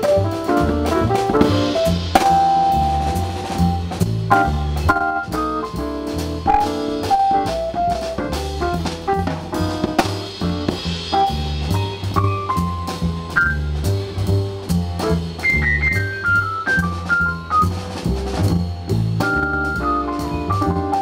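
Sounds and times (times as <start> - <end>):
bass line: 0.0 - 21.0
drum kit with cymbals: 0.0 - 21.0
keyboard lines: 6.5 - 7.8.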